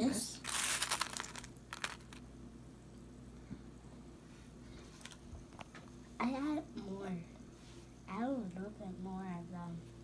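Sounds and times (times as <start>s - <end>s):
crackling clicks of handled objects: 0.5s - 2.2s.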